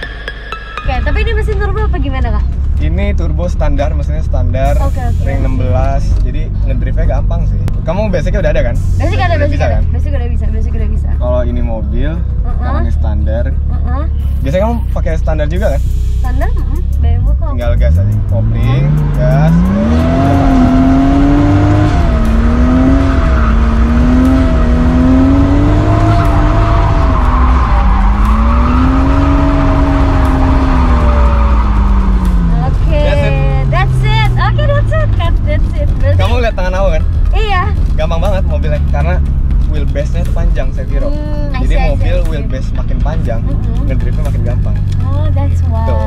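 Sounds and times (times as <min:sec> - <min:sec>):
car engine revving: 0:00.8 - 0:46.0
tyres squealing: 0:22.4 - 0:32.6
voices: 0:32.4 - 0:46.0.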